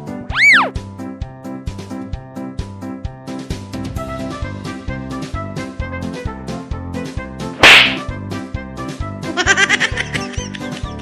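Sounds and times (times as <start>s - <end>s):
upbeat comedy background music: 3.2s - 11.0s
noisy crack hit effect: 7.6s - 8.1s.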